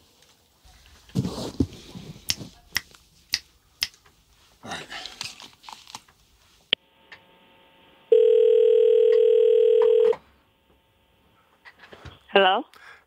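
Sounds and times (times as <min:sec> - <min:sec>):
phone line click: 0:08.1 - 0:10.2
telephone ringback tone: 0:08.1 - 0:10.2.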